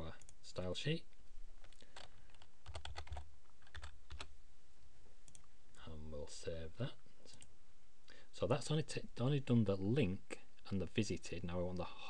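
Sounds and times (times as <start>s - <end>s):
typing on computer keyboard: 2.0s - 4.3s.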